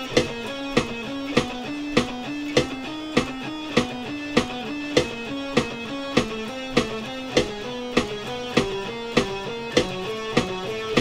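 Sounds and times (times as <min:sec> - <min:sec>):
electric guitar picking single notes: 0:00.0 - 0:11.0
metronome click: 0:00.0 - 0:11.0.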